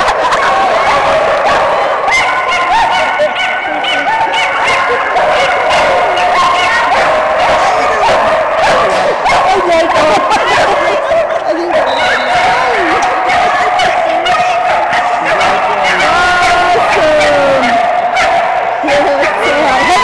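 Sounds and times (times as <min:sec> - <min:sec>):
dogs barking and yipping: 0:00.0 - 0:20.0.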